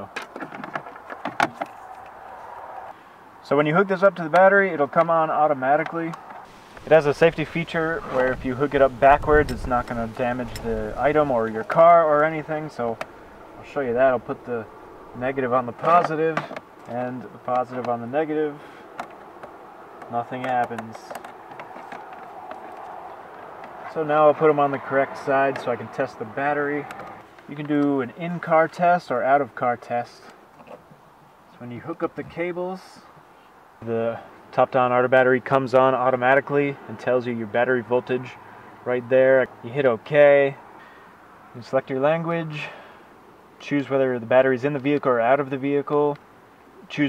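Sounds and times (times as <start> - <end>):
clicks and knocks of handling: 0.1 - 2.2, 15.8 - 18.0, 18.9 - 23.9
steady background hiss: 1.4 - 47.0
soft rushing noise: 6.5 - 18.9.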